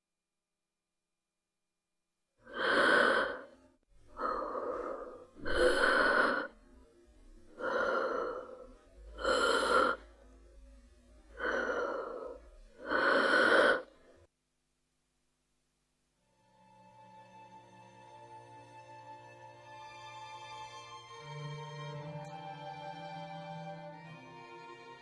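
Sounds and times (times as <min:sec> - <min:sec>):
person breathing heavily: 0:02.4 - 0:06.7, 0:07.4 - 0:10.3, 0:11.3 - 0:14.3.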